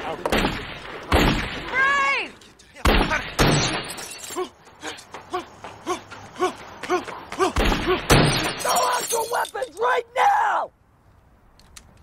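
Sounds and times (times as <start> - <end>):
glass shattering: 3.4 - 4.5, 8.1 - 9.8.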